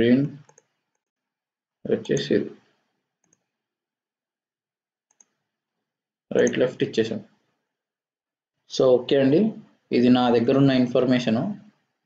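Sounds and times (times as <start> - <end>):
computer mouse clicks: 0.4 - 1.2, 3.2 - 3.5, 5.1 - 5.4.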